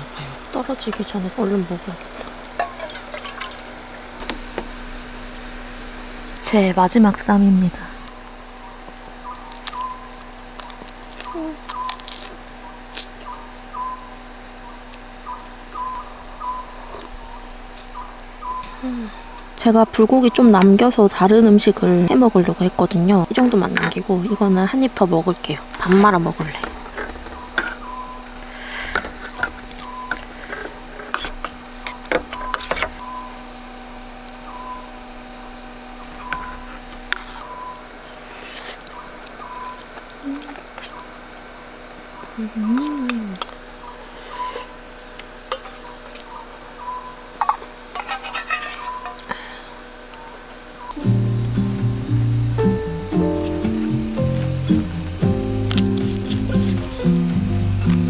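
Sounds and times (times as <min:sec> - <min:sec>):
night insects droning: 0:00.0 - 0:58.0
background music: 0:51.0 - 0:58.0.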